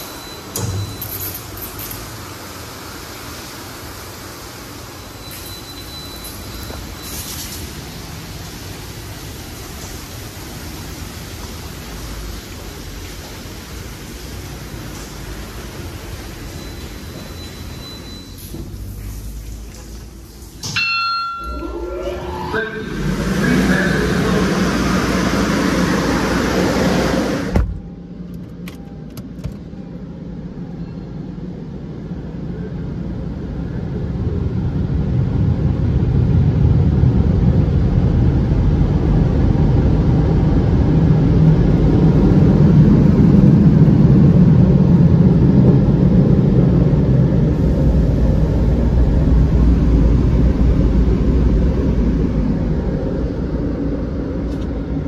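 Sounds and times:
car engine and tyre rumble: 0:00.0 - 0:20.6, 0:22.4 - 0:55.0
car wash machinery rushing: 0:00.0 - 0:20.8, 0:21.4 - 0:55.0
falling whine: 0:20.8 - 0:28.2, 0:29.9 - 0:55.0.

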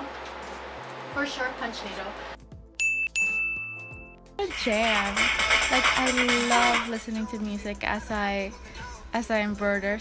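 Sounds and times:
bell-like ding: 0:02.8 - 0:04.2.

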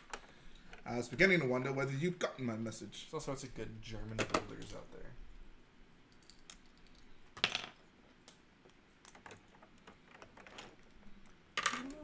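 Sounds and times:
plastic bricks clicking and rattling: 0:09.0 - 0:12.0.

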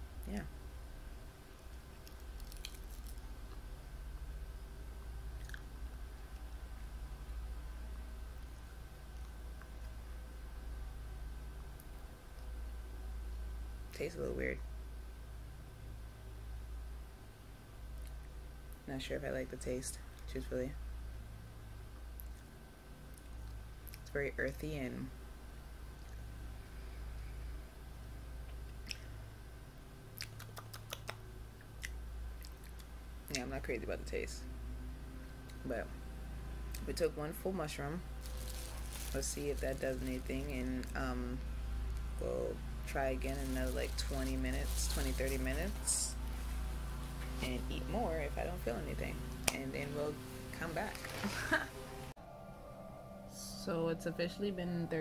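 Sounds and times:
low steady hum: 0:00.0 - 0:55.0
person chewing: 0:01.9 - 0:03.2, 0:05.4 - 0:05.7, 0:31.8 - 0:32.9
crisp bites: 0:01.9 - 0:03.6, 0:38.2 - 0:40.9
wet mouth clicks: 0:28.8 - 0:29.1, 0:30.2 - 0:32.9.

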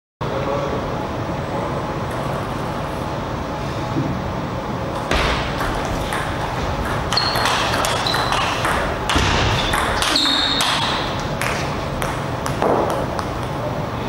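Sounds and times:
shoes squeaking on floor: 0:05.8 - 0:12.0.

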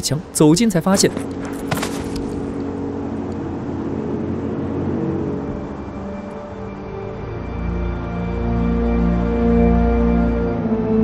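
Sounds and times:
blizzard wind blowing: 0:00.0 - 0:11.0.

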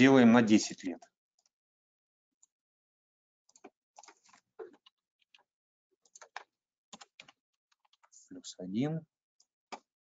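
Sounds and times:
computer keyboard typing: 0:03.5 - 0:08.2.

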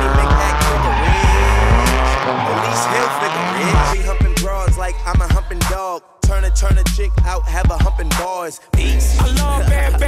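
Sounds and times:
tyres squealing: 0:00.0 - 0:04.0
car engine running: 0:00.0 - 0:08.1
rap music with heavy bass: 0:00.0 - 0:10.0.

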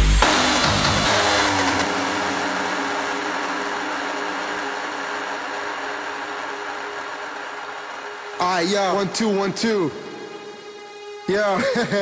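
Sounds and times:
droning synth chord: 0:00.0 - 0:11.3.

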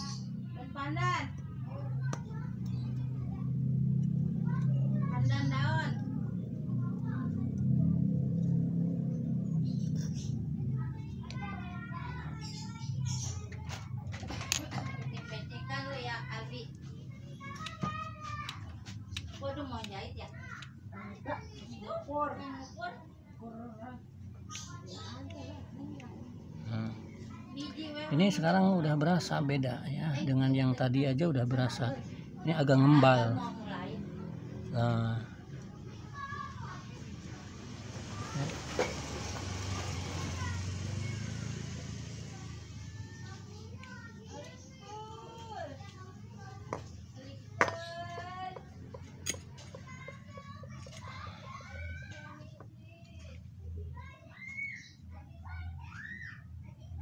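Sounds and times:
voices talking: 0:00.0 - 0:57.0
vehicle engine rumble: 0:00.2 - 0:22.8, 0:33.3 - 0:54.8.

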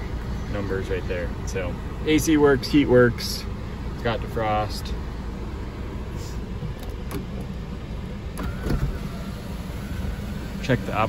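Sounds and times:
car engine idling: 0:00.0 - 0:11.0
moonroof motor whine: 0:06.8 - 0:11.0.

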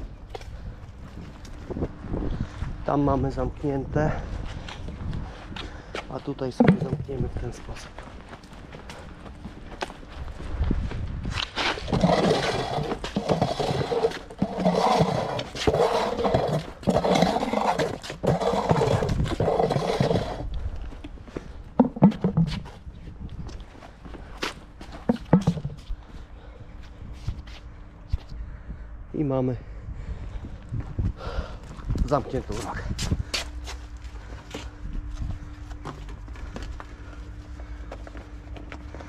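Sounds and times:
footsteps on concrete paving: 0:00.0 - 0:28.4, 0:30.3 - 0:39.0.

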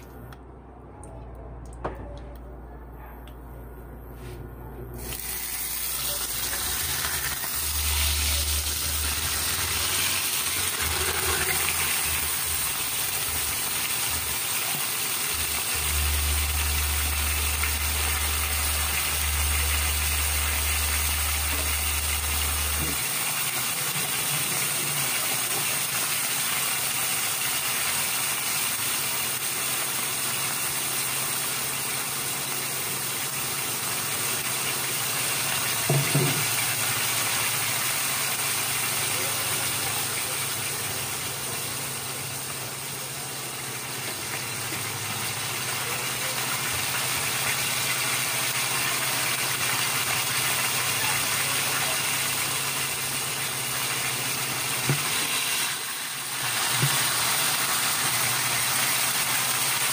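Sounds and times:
squid sizzling in hot oil: 0:05.0 - 0:59.9.

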